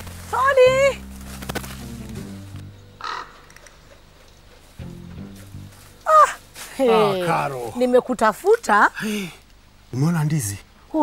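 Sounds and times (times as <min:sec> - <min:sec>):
background music: 0:00.0 - 0:07.7.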